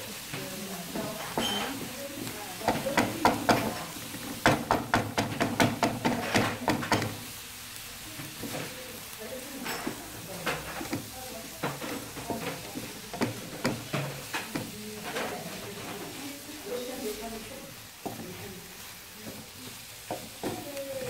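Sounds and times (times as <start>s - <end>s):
vegetables sizzling in oil: 0.0s - 21.0s
spatula scraping and knocking pan: 0.2s - 7.4s, 8.2s - 17.1s, 17.7s - 21.0s.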